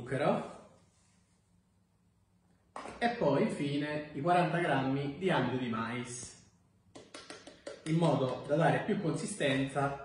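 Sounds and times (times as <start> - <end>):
faint low hum: 0.0 - 10.0
person speaking: 2.8 - 10.0.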